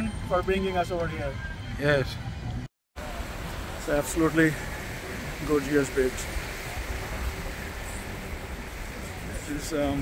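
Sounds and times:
gentle surf: 3.0 - 10.0.

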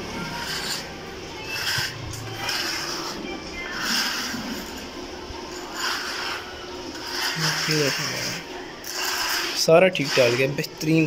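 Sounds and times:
metal bar scraping wet concrete: 0.2 - 4.9, 5.5 - 11.0.

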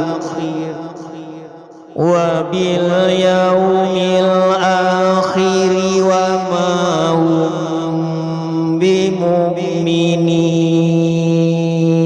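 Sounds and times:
person chanting melodically: 0.0 - 12.0.

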